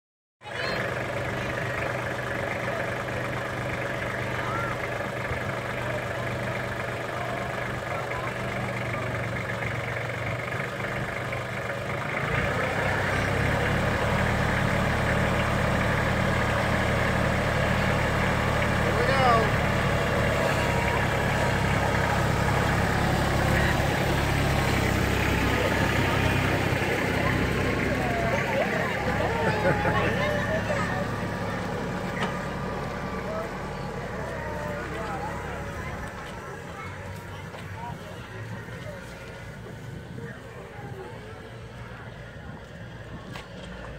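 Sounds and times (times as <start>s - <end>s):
diesel tractor engine running: 0.4s - 43.9s
people chattering: 0.4s - 43.9s.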